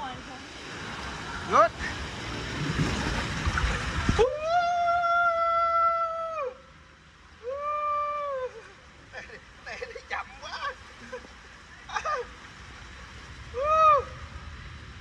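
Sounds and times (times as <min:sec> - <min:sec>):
water rushing in slide tube: 0:00.0 - 0:15.0
person yelling: 0:04.2 - 0:06.6, 0:13.6 - 0:14.2
person whooping: 0:04.2 - 0:06.7, 0:07.4 - 0:08.7, 0:13.6 - 0:14.2.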